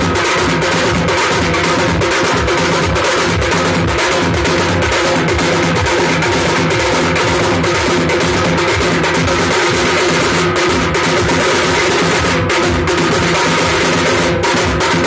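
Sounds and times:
barrel drum beating: 0:00.0 - 0:15.0
side drums beaten with sticks: 0:00.0 - 0:15.0.

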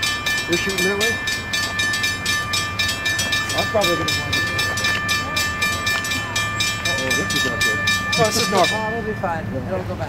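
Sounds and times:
railroad crossing bell ringing: 0:00.0 - 0:10.0.

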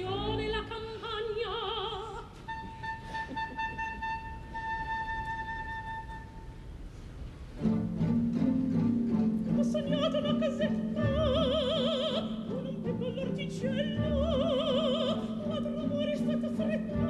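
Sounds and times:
soprano singing with vibrato: 0:00.0 - 0:06.3, 0:09.4 - 0:17.0
orchestra playing: 0:07.6 - 0:17.0.

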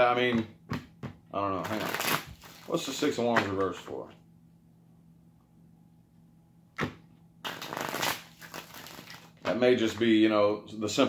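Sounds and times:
cards snapping: 0:06.8 - 0:09.3
card riffling: 0:07.5 - 0:09.3.

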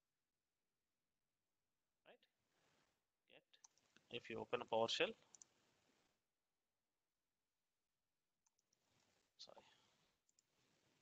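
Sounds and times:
computer mouse clicks: 0:03.6 - 0:04.1, 0:05.3 - 0:05.6, 0:08.4 - 0:09.2.

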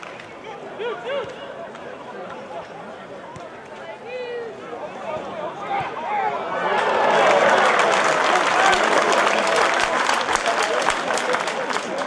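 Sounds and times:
crowd shouting: 0:00.0 - 0:10.8
crowd applause: 0:06.4 - 0:12.0.

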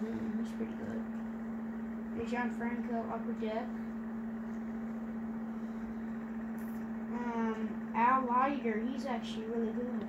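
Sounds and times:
steady one-tone hum: 0:00.0 - 0:10.0.

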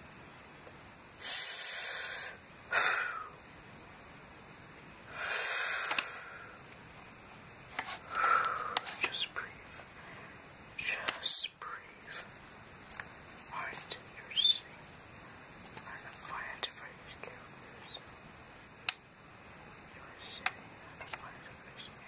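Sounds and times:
soft whispering: 0:08.1 - 0:12.4, 0:13.4 - 0:15.0, 0:15.6 - 0:18.1, 0:19.9 - 0:22.0.

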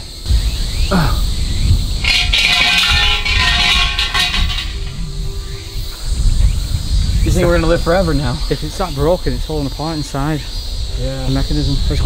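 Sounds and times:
shrine bell jangling: 0:02.0 - 0:05.1.

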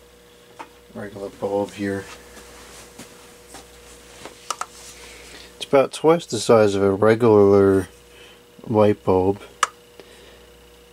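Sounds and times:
faint steady hum: 0:00.0 - 0:10.9.

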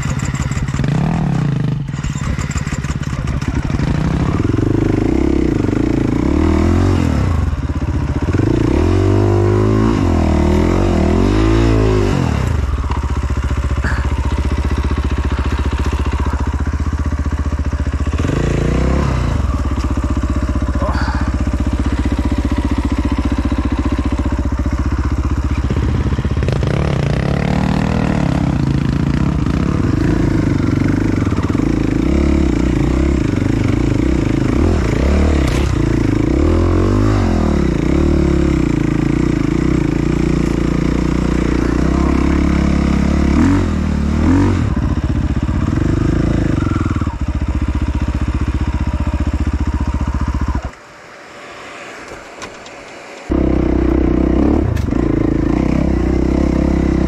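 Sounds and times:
dirt bike engine revving: 0:00.0 - 0:50.8, 0:53.0 - 0:57.0.

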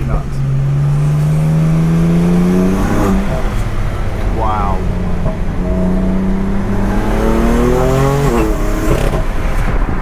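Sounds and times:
car engine accelerating: 0:00.0 - 0:09.9.

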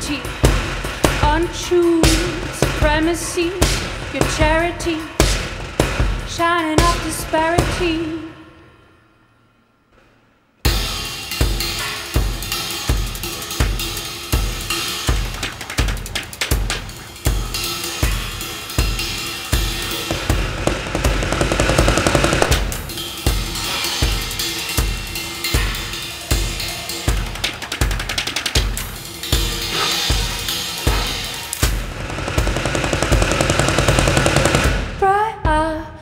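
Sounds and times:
bass drum beat: 0:00.0 - 0:07.9, 0:12.2 - 0:35.7
cymbal playing: 0:10.7 - 0:32.0
snare drum: 0:10.7 - 0:35.0
hi-hat: 0:22.8 - 0:31.6.

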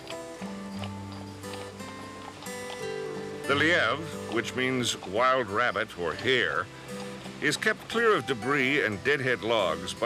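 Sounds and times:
background music with held notes: 0:00.0 - 0:10.0
horse hooves clip-clopping on dirt: 0:00.0 - 0:10.0.

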